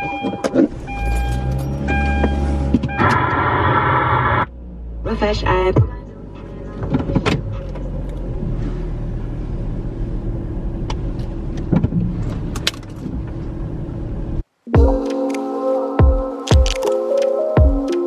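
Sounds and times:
car cabin engine rumble: 0.5s - 14.5s
synth chord over a beat: 14.7s - 18.0s
handling clicks and knocks: 16.5s - 17.0s.

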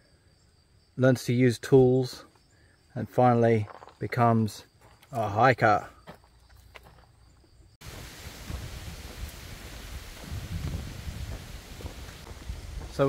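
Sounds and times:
wind on microphone: 7.8s - 13.0s.

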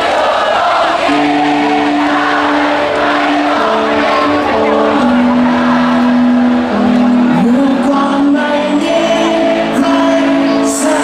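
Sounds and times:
live rock band: 0.1s - 11.0s
electric guitar sustained melody: 0.8s - 11.0s.

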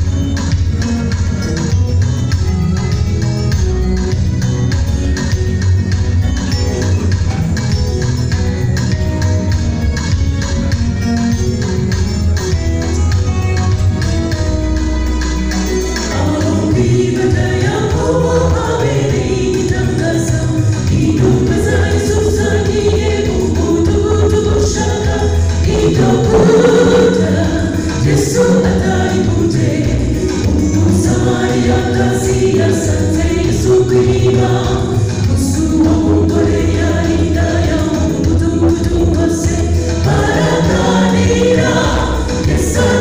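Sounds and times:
steady bass accompaniment: 0.0s - 43.0s
choir singing gospel: 15.9s - 43.0s
steady low bass: 21.1s - 41.4s.

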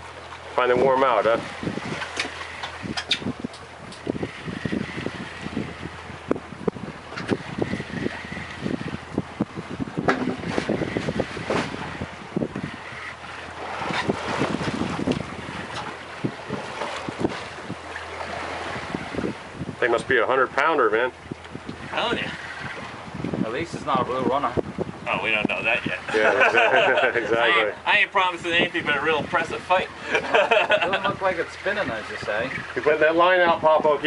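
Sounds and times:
low boat hum: 0.0s - 34.0s
water against boat: 0.0s - 34.0s
wind on microphone: 0.8s - 27.0s, 28.4s - 34.0s.

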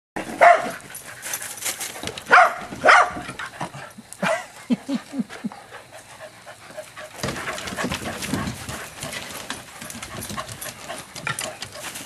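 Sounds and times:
dogs barking sharply: 0.2s - 0.8s, 2.3s - 3.5s.

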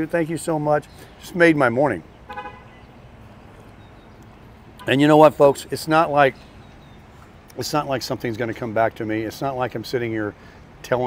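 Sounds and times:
traffic hum: 0.0s - 11.0s
short car horn toot: 2.3s - 2.9s.

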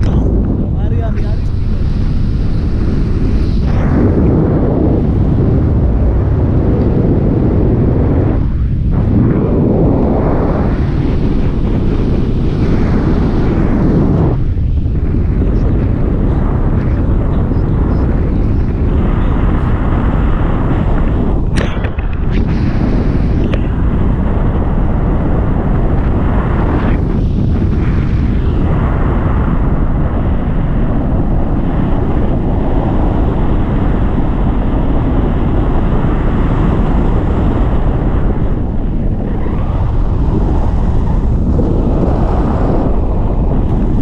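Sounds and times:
wind buffeting camera microphone: 0.0s - 44.0s.

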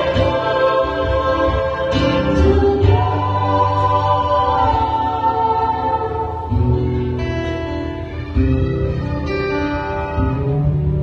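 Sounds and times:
mixed vocal group singing in harmony: 0.0s - 9.1s.

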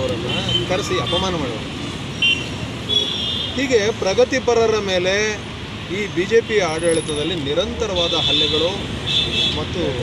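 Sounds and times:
man speaking: 0.0s - 1.7s
street traffic: 0.0s - 10.0s.

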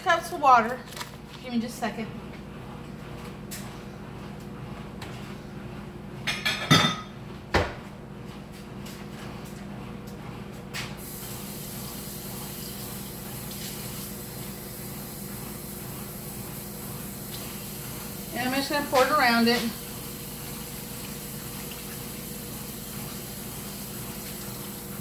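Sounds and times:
kitchenware clattering: 6.3s - 7.2s
tap water filling cup: 20.4s - 24.9s.

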